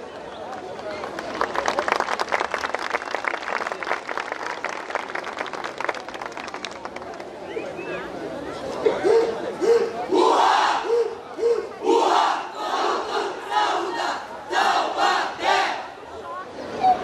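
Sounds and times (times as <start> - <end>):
group shouting a rhythmic chant: 9.6 - 15.9.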